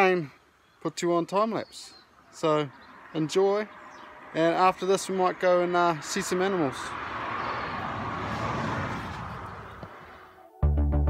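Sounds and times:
outdoor background noise: 0:00.0 - 0:10.6
synthesizer music with steady beat: 0:10.6 - 0:11.0.

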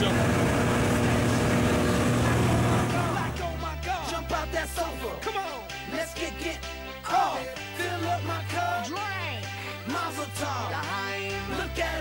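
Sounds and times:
light aircraft engine: 0:00.0 - 0:03.1
music: 0:00.0 - 0:12.0.

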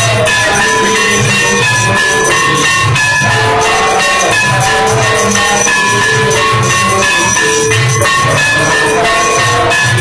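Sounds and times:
cymbals: 0:00.0 - 0:10.0
ringing metal bells: 0:00.0 - 0:10.0
steady drum beat: 0:00.0 - 0:10.0.

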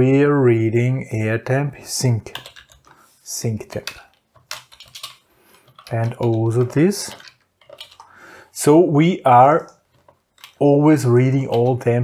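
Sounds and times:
typing on computer keyboard: 0:02.2 - 0:02.9, 0:03.7 - 0:08.2, 0:09.9 - 0:12.0.

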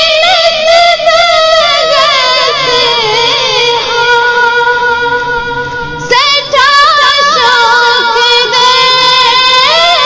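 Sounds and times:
woman singing devotional song: 0:00.0 - 0:10.0.

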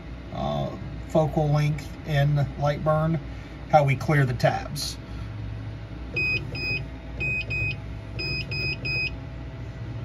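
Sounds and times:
machine low hum: 0:00.0 - 0:10.0
short electronic beeps: 0:06.2 - 0:09.2.

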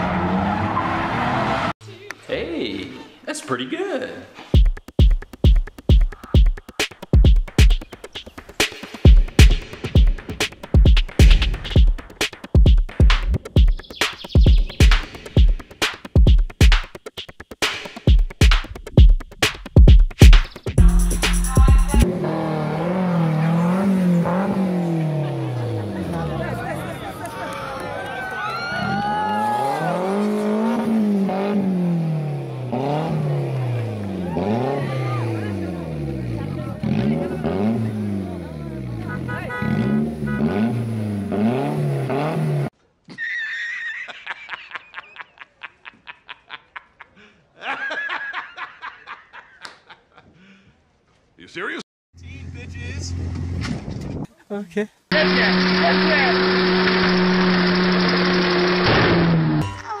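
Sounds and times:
music with singing: 0:20.2 - 0:22.1
car engine revving: 0:22.0 - 0:26.8, 0:29.8 - 0:42.7, 0:55.1 - 0:59.6.

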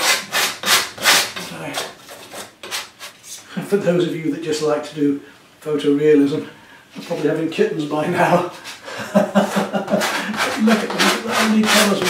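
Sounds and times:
trowel scraping paint on canvas: 0:00.0 - 0:03.2, 0:09.9 - 0:12.0.

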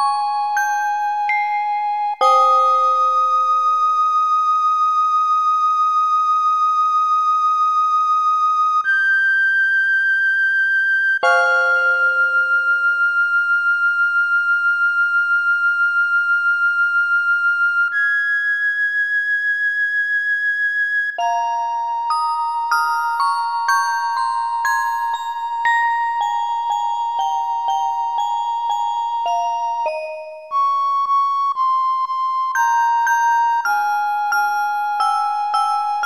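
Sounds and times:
celesta chords: 0:00.0 - 0:04.0, 0:11.2 - 0:13.0, 0:21.2 - 0:36.0.

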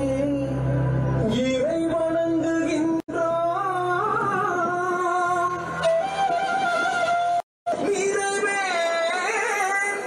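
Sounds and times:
sung music with held vocal notes: 0:00.0 - 0:10.0.

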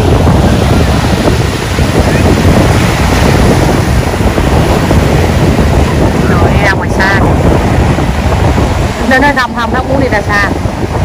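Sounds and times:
ocean surf breaking: 0:00.0 - 0:11.0
wind buffeting microphone: 0:00.0 - 0:11.0.

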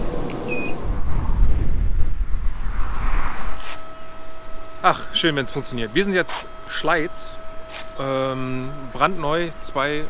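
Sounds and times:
road and wind rumble: 0:00.0 - 0:05.8
steady high hum: 0:00.0 - 0:10.0.

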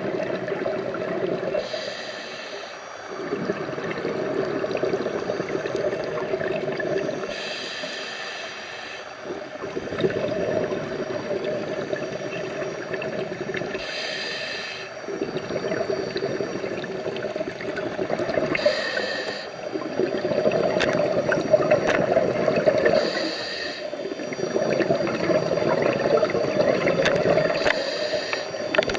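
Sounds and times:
burbling exhaled bubbles: 0:00.0 - 0:01.8, 0:03.1 - 0:07.3, 0:09.2 - 0:14.0, 0:14.9 - 0:28.9
hissing inhale through regulator: 0:00.9 - 0:28.9.

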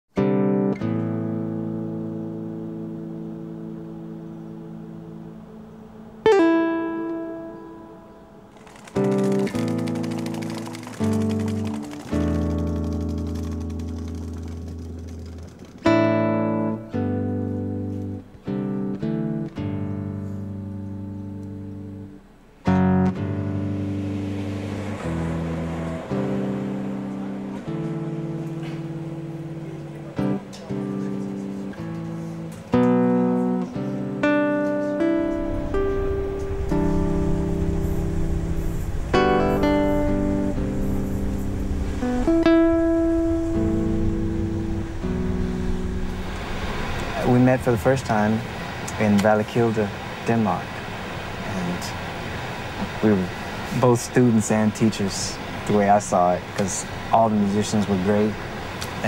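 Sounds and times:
guitar chord ringing: 0:00.1 - 0:59.0.

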